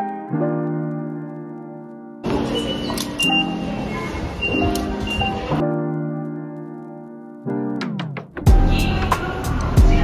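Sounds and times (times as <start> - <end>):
background music: 0.0 - 10.0
busy station crowd noise: 2.2 - 6.3, 8.5 - 10.0
short electronic beeps: 2.3 - 5.5.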